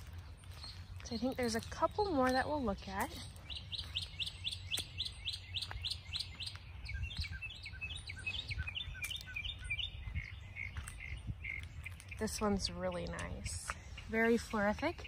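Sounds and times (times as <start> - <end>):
songbird singing: 0.0 - 15.0.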